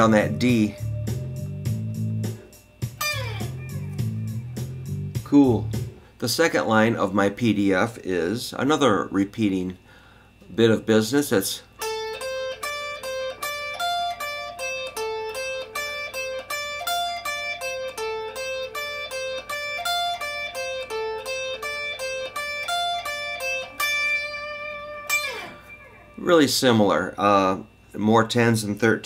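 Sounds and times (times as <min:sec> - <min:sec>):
electric guitar blues phrase: 0:00.0 - 0:06.1, 0:11.3 - 0:27.8.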